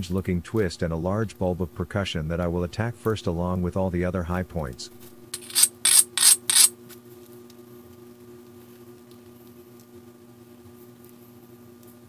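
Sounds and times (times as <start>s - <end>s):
stone scraping on stone: 5.4s - 6.7s.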